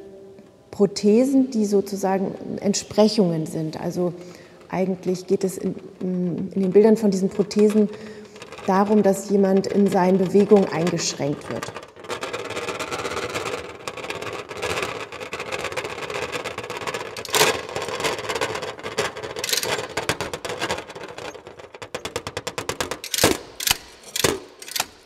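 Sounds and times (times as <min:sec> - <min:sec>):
metal instrument rattling: 0:16.3 - 0:22.2, 0:22.9 - 0:25.0.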